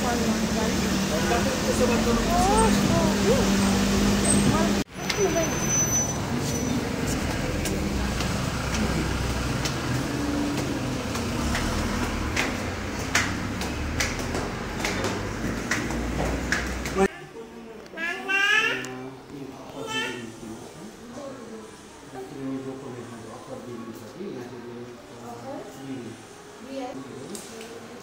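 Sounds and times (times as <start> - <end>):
car engine hum: 0.0 - 4.9, 6.2 - 17.1
footsteps climbing stairs: 7.2 - 17.1.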